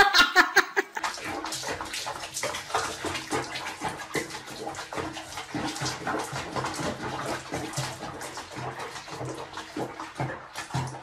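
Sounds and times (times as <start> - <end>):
water splashing in a basin: 0.0 - 11.0.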